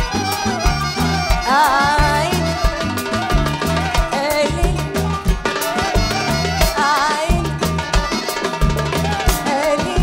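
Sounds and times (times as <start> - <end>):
live band playing upbeat pop: 0.0 - 10.0
woman singing into microphone: 1.2 - 5.2, 5.8 - 8.3, 9.1 - 10.0.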